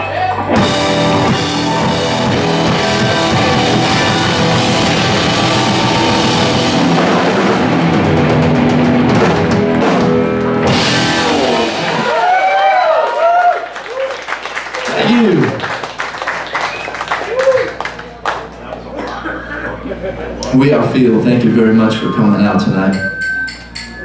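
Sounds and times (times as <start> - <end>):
audience whooping and yelling: 0.0 - 7.0, 11.1 - 15.7, 16.3 - 18.2
rock band playing loudly: 0.0 - 12.4
audience clapping: 11.3 - 19.4.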